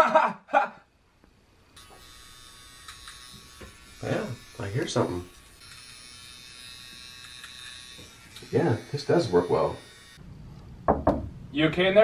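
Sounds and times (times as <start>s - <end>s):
nose hair trimmer buzzing: 1.8s - 10.2s.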